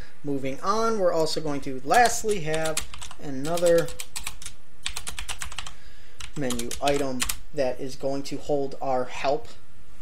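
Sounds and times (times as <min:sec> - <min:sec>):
typing on computer keyboard: 0:02.0 - 0:07.4.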